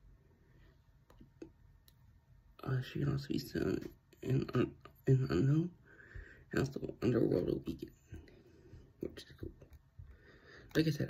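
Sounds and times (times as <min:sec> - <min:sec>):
man half-whispering: 0:09.0 - 0:09.8.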